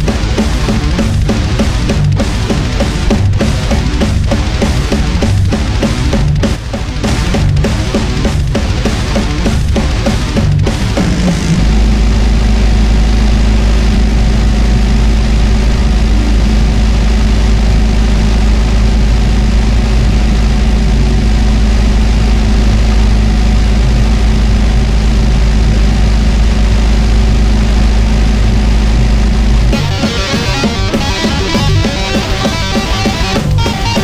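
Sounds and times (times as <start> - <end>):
low distorted guitar drone: 0.0 - 34.0.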